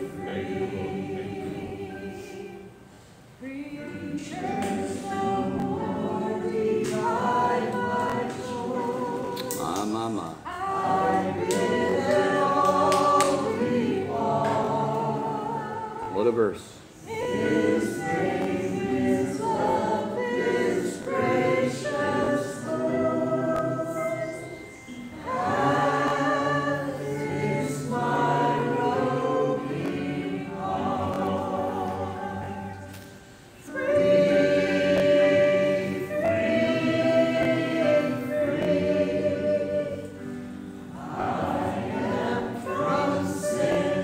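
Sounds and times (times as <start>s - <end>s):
group singing a hymn: 0.0s - 44.0s.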